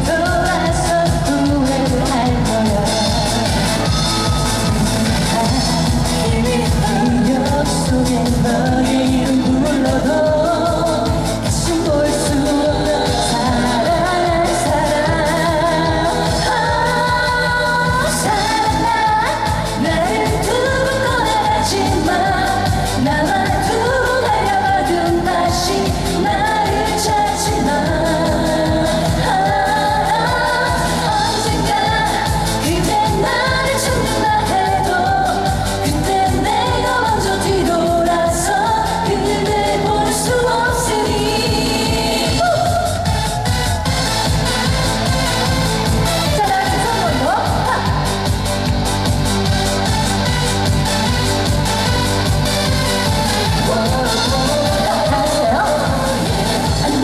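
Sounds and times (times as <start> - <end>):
woman singing into microphone: 0.0 - 48.8, 51.8 - 57.0
pop accompaniment with steady beat: 0.0 - 57.0.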